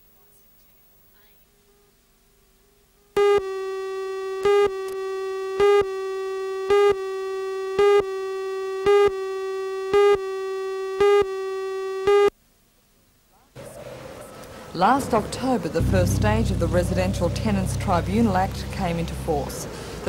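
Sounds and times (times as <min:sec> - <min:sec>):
buzzy electronic tone: 0:15.8 - 0:19.7
electronic pips: 0:15.8 - 0:19.7.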